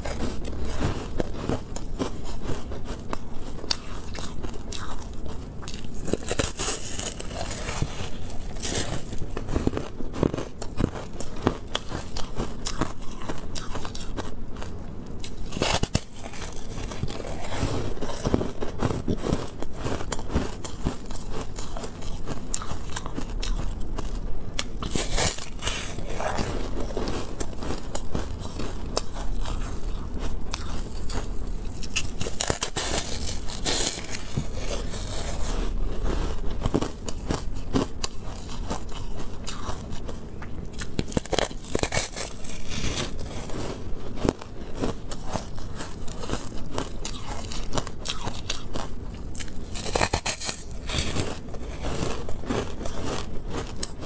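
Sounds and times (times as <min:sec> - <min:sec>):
chewing crunchy ice: 0:00.0 - 0:54.0.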